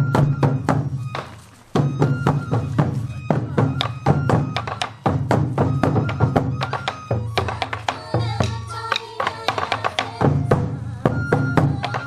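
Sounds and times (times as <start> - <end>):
taiko drums beating: 0.0 - 12.0.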